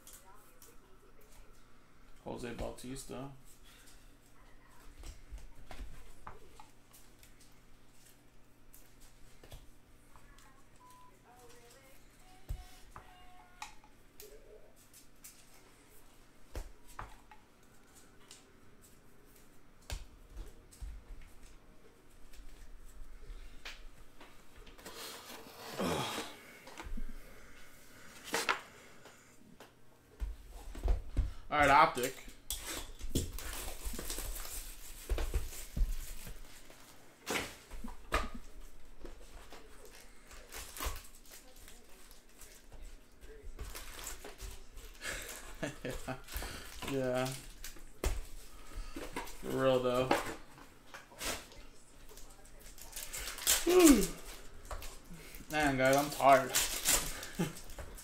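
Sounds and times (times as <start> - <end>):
plastic wrapper crinkling: 46.6 - 47.8, 51.2 - 58.0.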